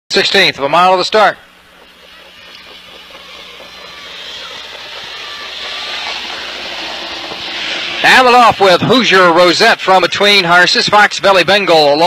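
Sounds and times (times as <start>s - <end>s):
racetrack rushing noise: 0.1s - 12.0s.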